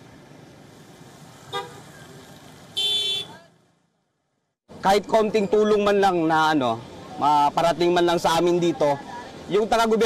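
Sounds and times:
street noise: 0.0 - 10.0
vehicle horn honking: 1.5 - 1.9, 2.8 - 3.5.

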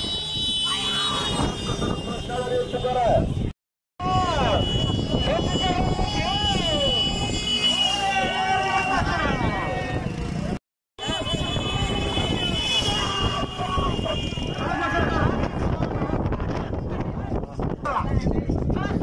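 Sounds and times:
spectators shouting and yelling: 0.0 - 3.2, 4.0 - 19.0.

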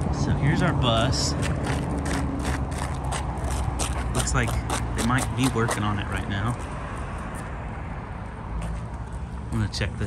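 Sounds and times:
footsteps on asphalt: 0.8 - 9.6.

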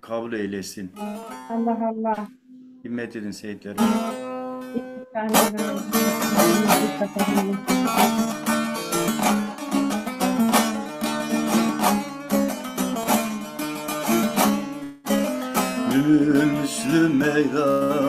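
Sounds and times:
lute strummed fast: 3.8 - 18.0.

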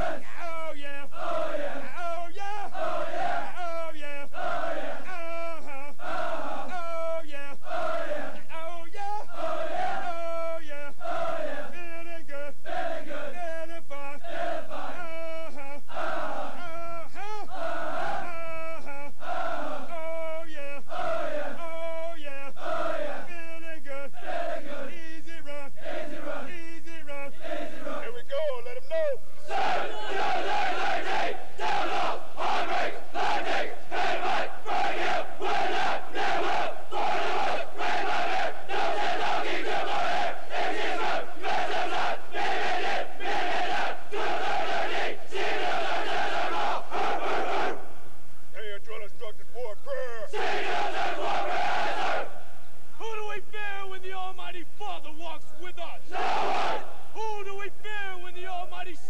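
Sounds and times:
group chanting in rhythm: 0.0 - 5.4, 6.0 - 11.8, 12.6 - 13.4, 14.2 - 15.2, 15.9 - 16.6, 17.2 - 18.6, 19.2 - 20.1, 20.9 - 21.8, 22.5 - 23.3, 24.1 - 25.2, 25.8 - 28.2, 29.4 - 47.9, 50.3 - 52.4, 56.1 - 57.0
massed shouting: 29.4 - 47.9, 50.3 - 52.4, 56.1 - 57.0.

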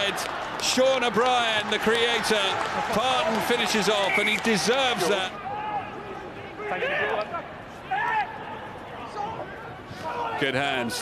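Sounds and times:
players shouting calls: 0.0 - 11.0.

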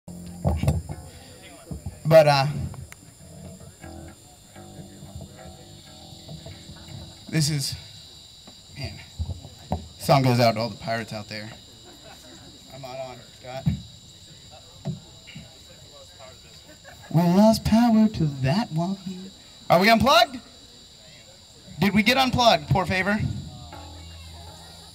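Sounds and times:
crickets trilling: 0.1 - 24.9
sound system hum: 3.4 - 8.1
faint knocks: 8.4 - 10.0.

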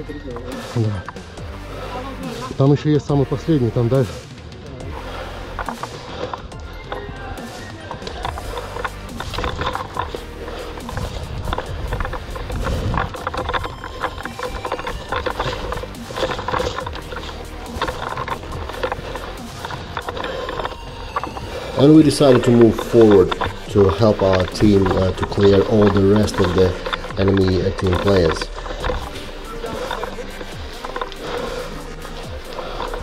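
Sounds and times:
background music: 0.0 - 33.0
footsteps on dry forest floor: 4.9 - 33.0.

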